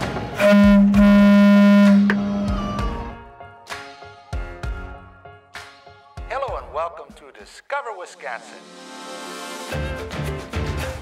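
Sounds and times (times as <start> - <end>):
music: 0.0 - 11.0
boat horn blast: 0.4 - 2.5.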